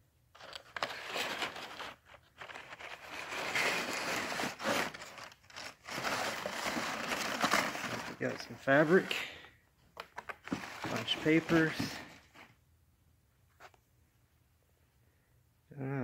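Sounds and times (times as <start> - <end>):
paper packing rustling: 0.4 - 9.4, 10.0 - 12.6.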